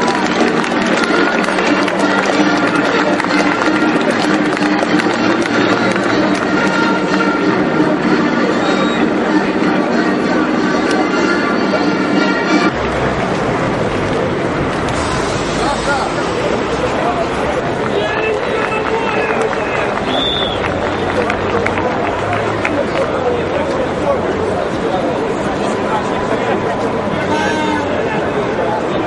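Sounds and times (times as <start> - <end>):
crowd noise: 0.0 - 29.0
music over stadium loudspeakers: 0.0 - 29.0.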